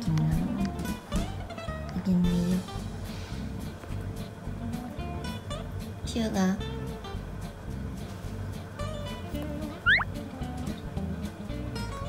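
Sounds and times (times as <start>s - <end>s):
acoustic guitar music: 3.7s - 12.0s
cat chirp: 9.8s - 10.1s.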